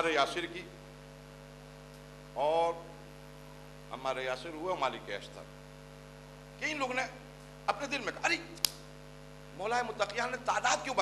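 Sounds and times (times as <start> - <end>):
electrical mains hum: 0.0 - 11.0
man speaking: 2.4 - 3.0, 6.6 - 8.6, 9.6 - 11.0.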